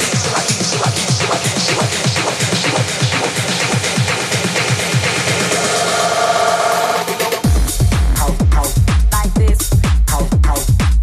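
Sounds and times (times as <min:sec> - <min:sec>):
upper percussion: 0:00.0 - 0:11.0.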